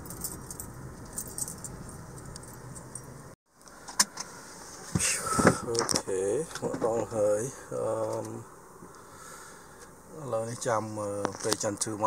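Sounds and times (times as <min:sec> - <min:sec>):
jingling and clicking: 0:00.0 - 0:03.2
car road and engine rumble: 0:00.0 - 0:08.9.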